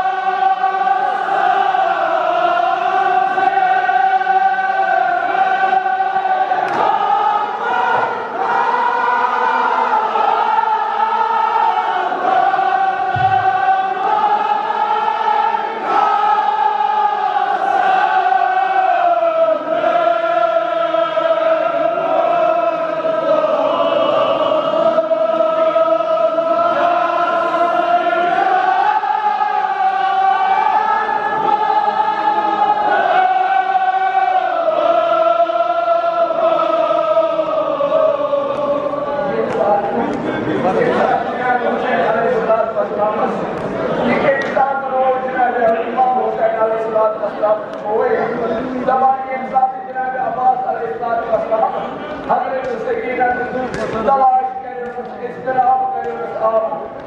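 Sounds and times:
men chanting in chorus: 0:00.0 - 0:56.9.

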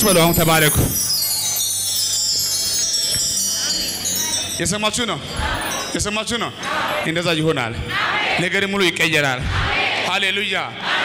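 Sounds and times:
ringing chime-like tones sliding down: 0:00.0 - 0:06.6.

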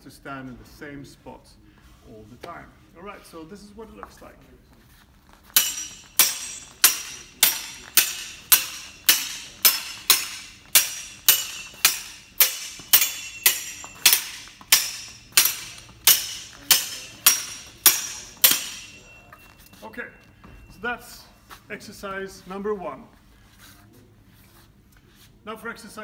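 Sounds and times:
steel swords clashing: 0:05.6 - 0:19.8.

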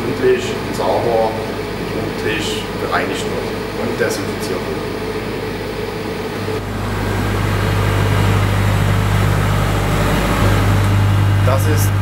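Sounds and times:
engine low even hum: 0:00.0 - 0:12.0.

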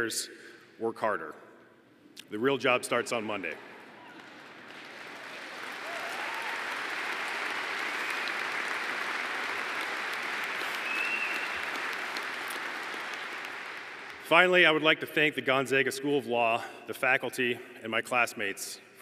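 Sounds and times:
large audience applauding: 0:04.0 - 0:14.2.

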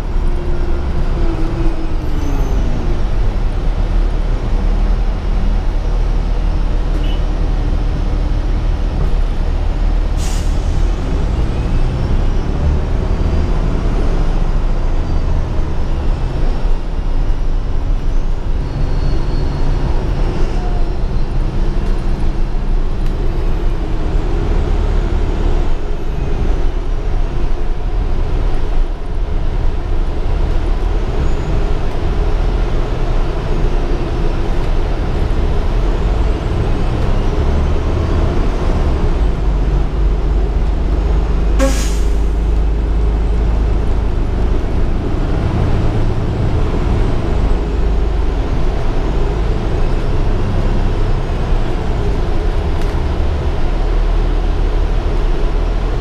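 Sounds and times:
bus engine and road rumble: 0:00.0 - 0:56.0.

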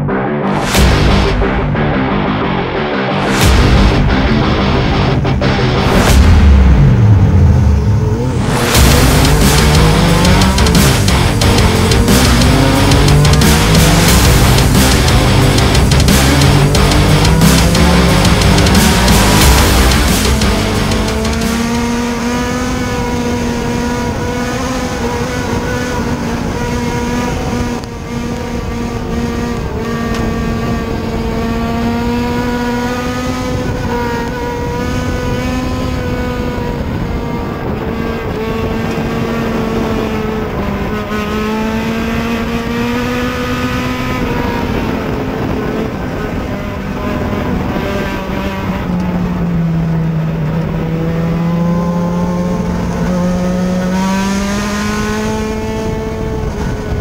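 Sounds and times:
race car engine running hard: 0:00.0 - 0:57.0.

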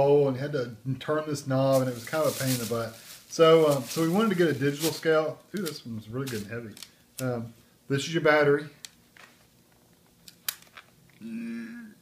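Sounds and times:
person humming: 0:11.2 - 0:12.0.

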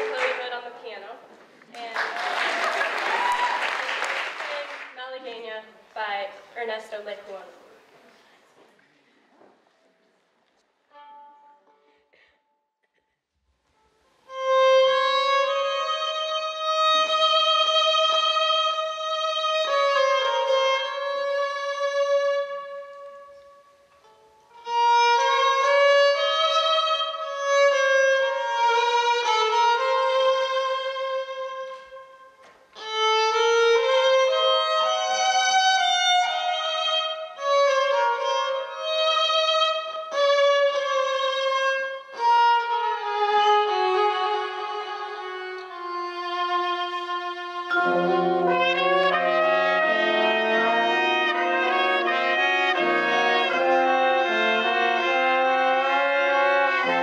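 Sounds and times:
electric violin melody: 0:10.8 - 0:11.9, 0:13.8 - 0:57.0.

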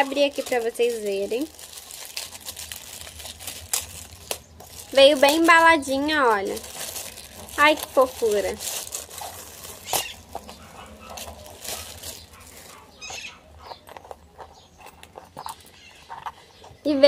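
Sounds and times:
plastic packaging crinkling: 0:00.0 - 0:16.1.

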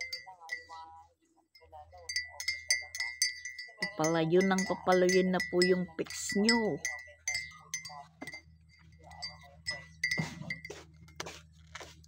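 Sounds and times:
light clinks: 0:00.0 - 0:00.9, 0:01.6 - 0:11.2
thin high ringing tone: 0:00.0 - 0:01.0, 0:01.6 - 0:11.2.

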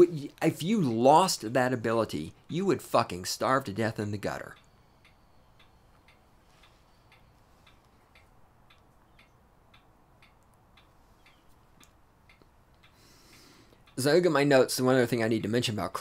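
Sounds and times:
faint regular ticking: 0:00.0 - 0:16.0
room hiss: 0:00.0 - 0:16.0.

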